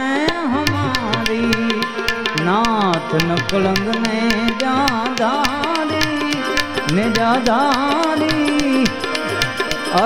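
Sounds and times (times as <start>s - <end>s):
harmonium chords: 0.0s - 10.0s
percussion beat: 0.0s - 10.0s
person singing: 0.0s - 10.0s.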